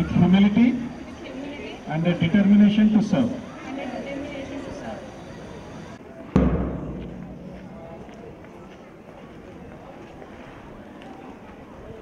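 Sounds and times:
heavy thump with deep boom: 0:06.4 - 0:08.1.

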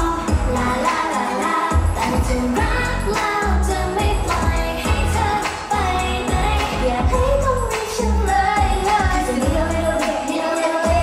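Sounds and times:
backing track with bass beat: 0:00.0 - 0:11.0
female group vocals singing: 0:00.0 - 0:11.0.

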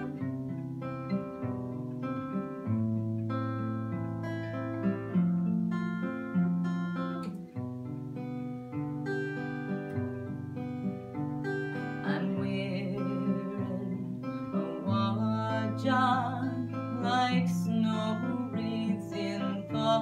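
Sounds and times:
woman singing: 0:00.0 - 0:00.2, 0:11.8 - 0:20.0
acoustic guitar: 0:00.0 - 0:20.0.

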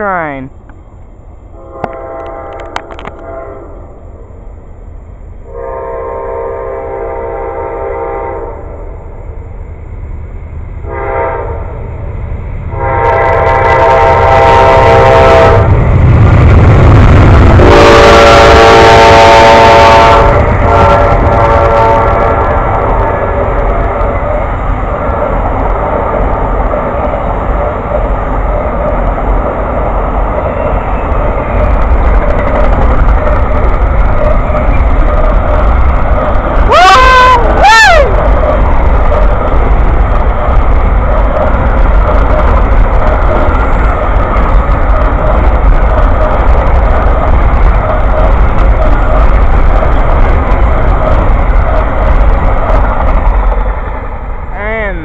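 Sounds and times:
train cars rumbling by: 0:00.0 - 0:55.0
locomotive air horn blasts: 0:01.6 - 0:03.8, 0:05.5 - 0:08.6, 0:10.8 - 0:11.6, 0:12.8 - 0:15.7, 0:17.6 - 0:23.3.

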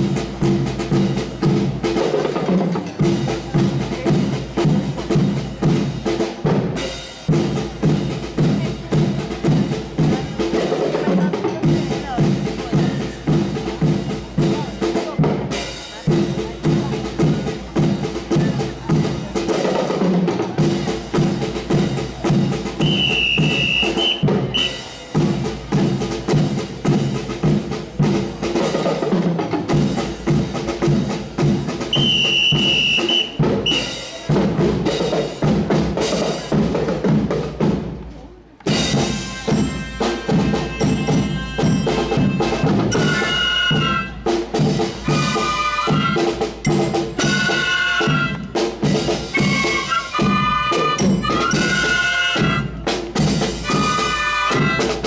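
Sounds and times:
snare and bass drums marching: 0:00.0 - 0:55.0
trilling signal whistle: 0:22.8 - 0:24.8, 0:31.9 - 0:34.0.

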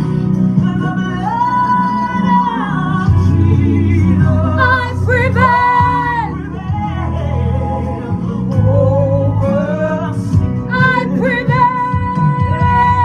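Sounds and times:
instrumental backing with bass: 0:00.0 - 0:13.0
woman singing: 0:00.6 - 0:06.8, 0:10.6 - 0:13.0.

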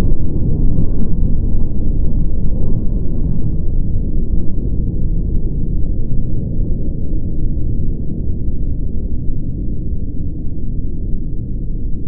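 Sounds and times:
deep explosion rumble: 0:00.0 - 0:10.4.

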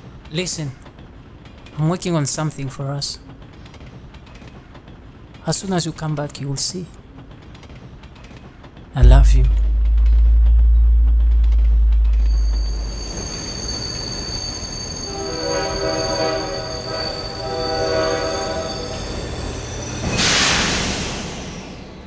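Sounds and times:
train rumble: 0:09.0 - 0:22.0
train horn: 0:12.2 - 0:20.7
train wheels squealing: 0:12.2 - 0:22.0
burst of hiss: 0:16.9 - 0:22.0.

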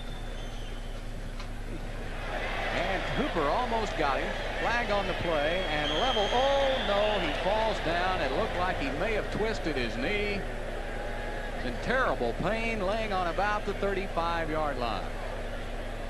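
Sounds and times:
steady low hum: 0:00.0 - 0:16.0
man sports commentary: 0:02.7 - 0:10.5, 0:11.6 - 0:15.2.

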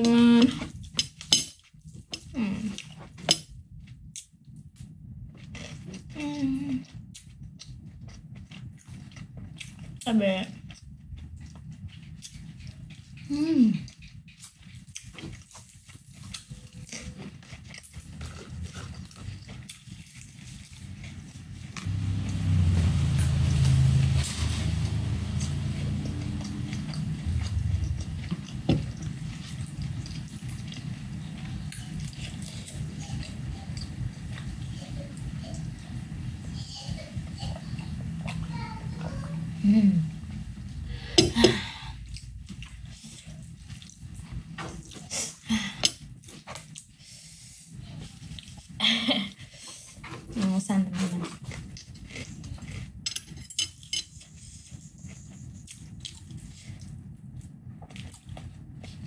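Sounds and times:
person chewing and lip-smacking: 0:05.4 - 0:10.0, 0:10.6 - 0:21.2, 0:25.1 - 0:36.5, 0:51.3 - 0:59.0
person humming mm: 0:13.3 - 0:13.8
loud dense low noise: 0:21.3 - 0:46.4.

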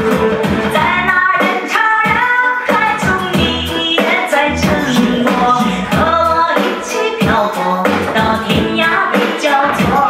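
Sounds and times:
woman singing: 0:00.7 - 0:10.0
steady dance beat: 0:02.9 - 0:10.0.

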